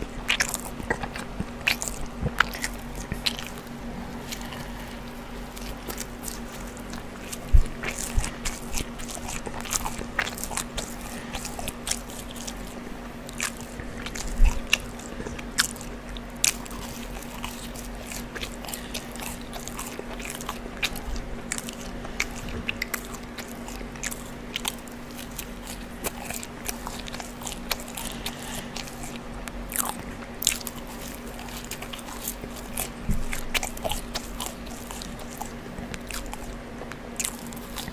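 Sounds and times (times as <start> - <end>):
chewing and crunching: 0.0 - 37.9
faint steady hum: 0.0 - 37.9.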